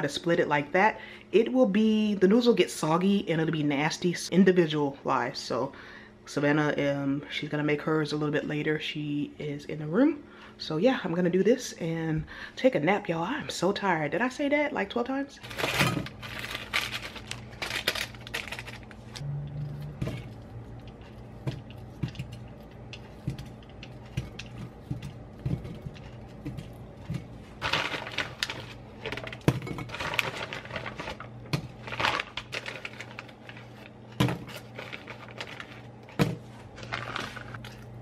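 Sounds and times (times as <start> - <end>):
steady low hum: 0.0 - 38.0
plastic packets crinkling: 15.4 - 19.2, 25.9 - 37.8.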